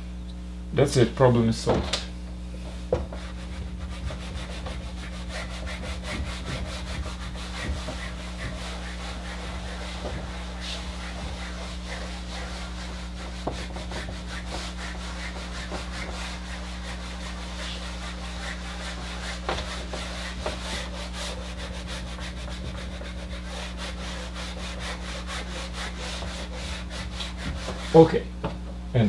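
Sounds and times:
eraser rubbing on whiteboard: 3.0 - 28.2.

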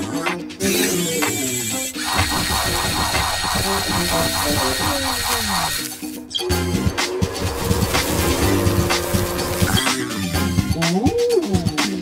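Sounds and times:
fast whirring pulse: 2.0 - 5.9
steady high tone: 2.0 - 8.9.

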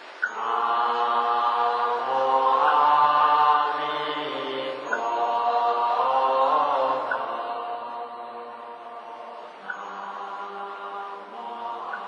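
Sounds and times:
group chanting in unison: 0.2 - 12.0.

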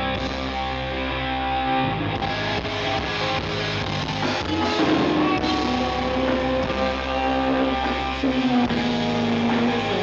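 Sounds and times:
rock band playing: 0.0 - 10.0.

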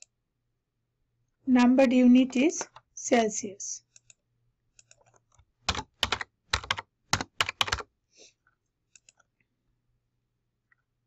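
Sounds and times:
typing on computer keyboard: 4.8 - 7.9.

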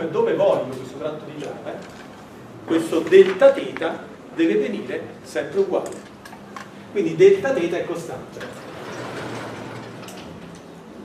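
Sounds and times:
lecture room noise: 0.0 - 11.0.

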